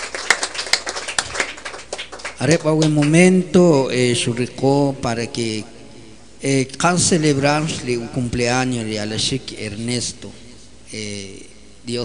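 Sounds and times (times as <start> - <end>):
people clapping in rhythm: 0.0 - 3.4.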